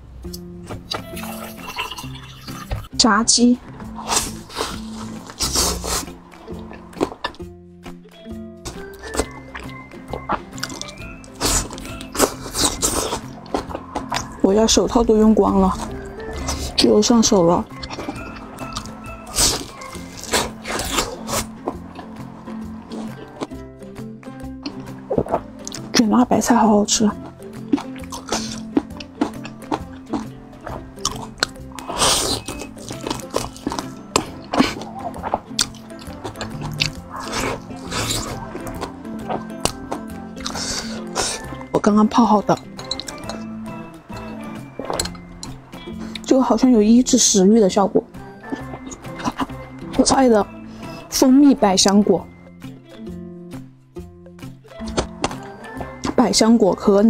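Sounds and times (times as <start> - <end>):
background music: 0.0 - 57.0
fried chicken bitten and chewed: 8.7 - 14.4, 17.7 - 23.6, 27.2 - 41.6.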